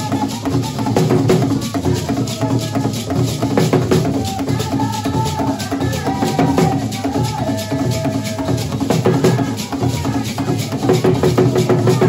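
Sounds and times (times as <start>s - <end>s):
bass drum and hand drums: 0.0s - 12.0s
voices singing held notes: 0.0s - 12.0s.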